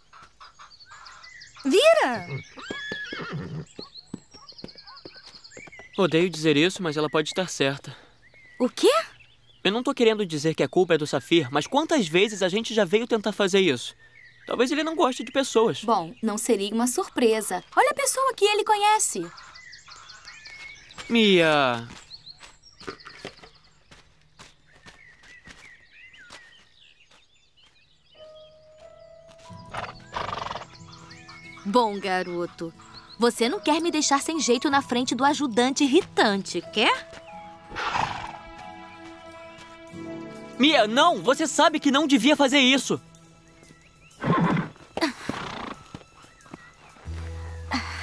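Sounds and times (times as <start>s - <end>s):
horse calling: 0.1s - 5.8s, 29.7s - 30.8s, 37.7s - 38.7s, 44.2s - 47.1s
horse hooves on ground: 0.1s - 7.0s, 19.4s - 40.8s, 43.5s - 47.7s
horse neighing or snorting: 2.1s - 3.8s, 29.7s - 30.8s, 37.7s - 38.4s, 44.2s - 46.0s
soft music with held notes: 28.1s - 48.0s.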